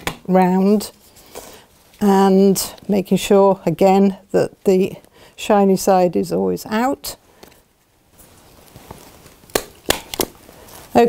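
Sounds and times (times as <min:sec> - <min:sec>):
sharp knocks of hard objects: 0:09.5 - 0:10.4.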